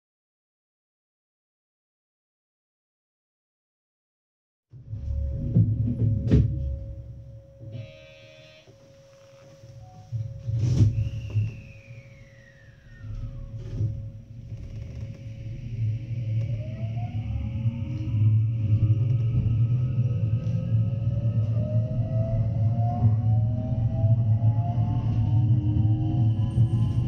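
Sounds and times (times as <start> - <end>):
low running rumble: 4.8 - 7.7
train inverter whine rising: 4.9 - 27.0.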